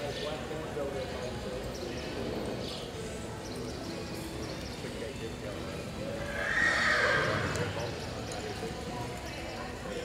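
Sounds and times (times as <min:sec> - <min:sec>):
low voices: 0:05.8 - 0:09.2
horse whinnying: 0:06.2 - 0:07.8.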